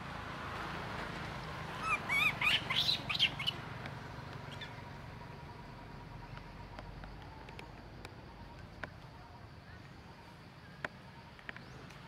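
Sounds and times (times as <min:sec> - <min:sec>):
monkey squealing and screeching: 0:01.8 - 0:03.6.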